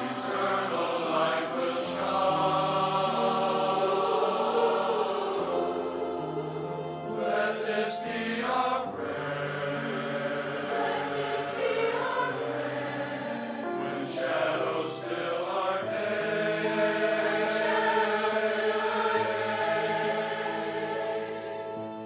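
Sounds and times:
mixed choir singing in harmony: 0:00.0 - 0:22.0.

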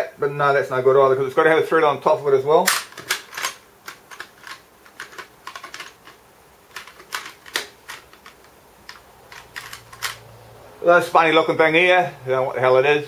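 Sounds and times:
bolts and nuts clinking in tin: 0:02.6 - 0:10.2.

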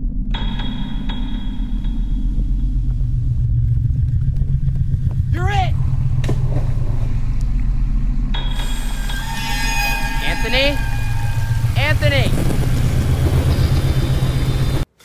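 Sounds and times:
low steady rumble: 0:00.0 - 0:14.9.

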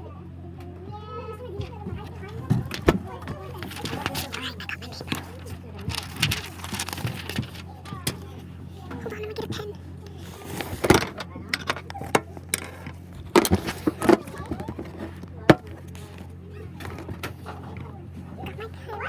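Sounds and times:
faint background voices: 0:00.0 - 0:19.0
steady low hum: 0:00.0 - 0:19.0.

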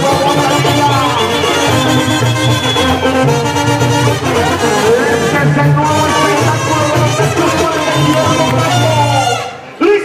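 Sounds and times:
pulsing low bass line: 0:00.0 - 0:09.4
trumpet and trombone notes: 0:00.0 - 0:09.7.

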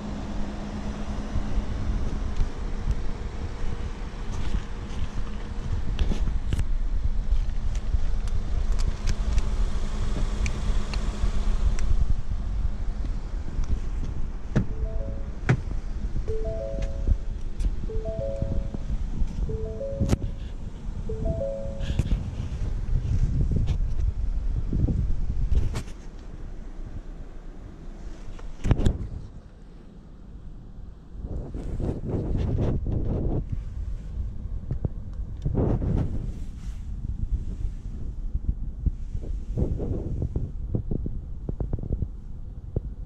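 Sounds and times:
wind buffeting microphone: 0:21.8 - 0:25.9, 0:31.2 - 0:43.0.

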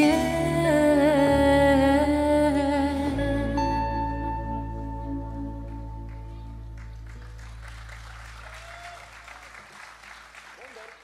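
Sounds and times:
live band sustained chord: 0:00.0 - 0:07.8
audience applause: 0:06.8 - 0:11.0.

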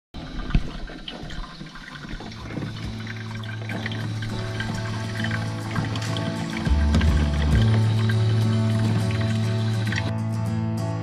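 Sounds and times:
coffee maker brewing: 0:00.2 - 0:10.1.

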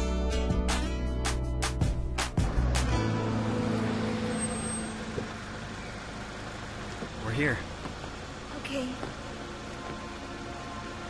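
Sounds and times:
background music: 0:00.0 - 0:05.1, 0:09.6 - 0:11.0
car engine: 0:00.7 - 0:11.0
road noise: 0:01.6 - 0:11.0.

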